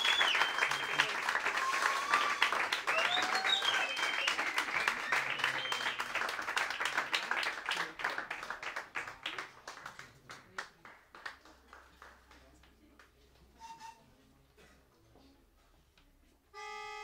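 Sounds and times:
audience applause: 0.0s - 12.4s.

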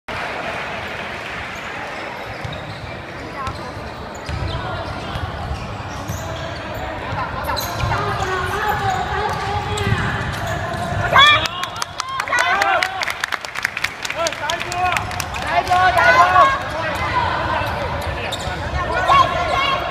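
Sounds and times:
sneakers squeaking on floor: 1.5s - 11.4s, 16.4s - 19.9s.

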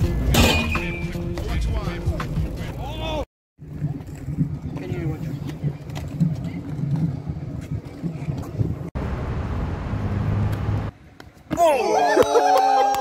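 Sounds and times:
low rumble of wind noise: 3.6s - 10.9s.

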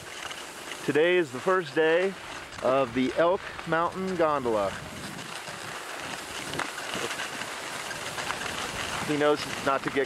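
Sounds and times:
skis sliding over snow: 0.0s - 10.0s.

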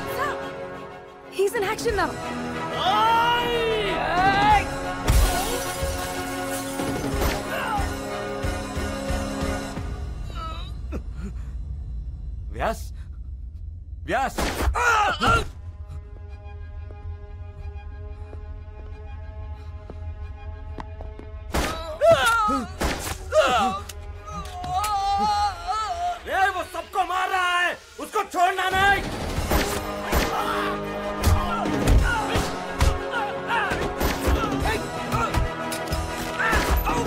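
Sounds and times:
dramatic film score: 0.0s - 37.0s
man yelling: 2.8s - 4.7s.

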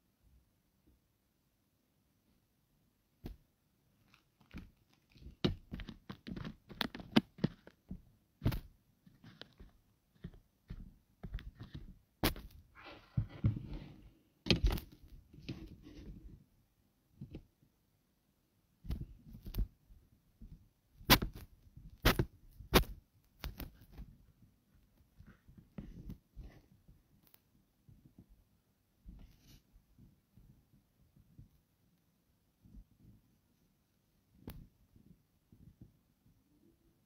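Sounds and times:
rustling: 3.2s - 16.5s.

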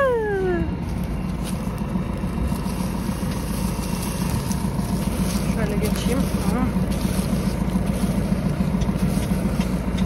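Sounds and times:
tractor engine humming: 0.0s - 10.0s.

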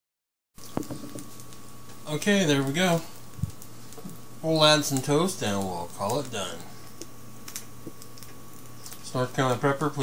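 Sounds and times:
faint steady hum: 0.6s - 10.0s.

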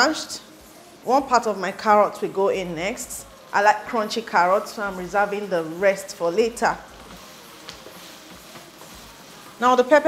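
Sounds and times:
stir-fry sizzling in a wok: 0.0s - 10.0s
wooden spatula stirring: 0.0s - 10.0s
spatula tapping: 6.5s - 9.7s.

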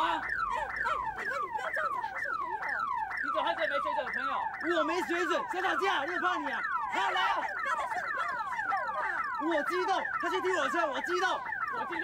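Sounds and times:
car alarm wailing: 0.0s - 12.0s.

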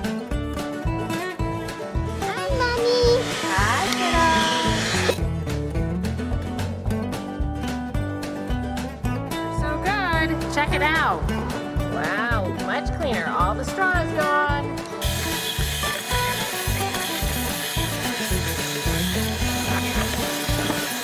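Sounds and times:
acoustic country music: 0.0s - 21.0s.

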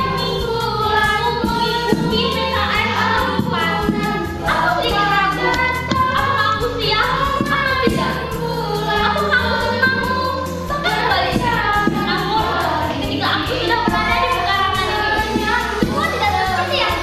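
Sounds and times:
girls singing together: 0.0s - 17.0s
low musical accompaniment: 0.0s - 17.0s.

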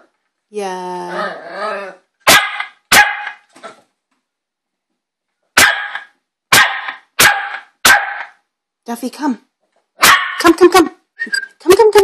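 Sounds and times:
puppy barking: 2.2s - 3.4s, 5.6s - 8.4s, 10.0s - 10.5s.

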